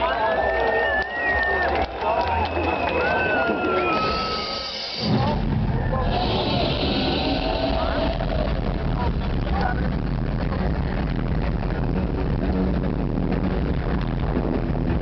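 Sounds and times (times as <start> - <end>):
crowd shouting: 0.0 - 9.8
electronic dance music: 3.2 - 15.0
hiss-like rush: 5.9 - 8.6.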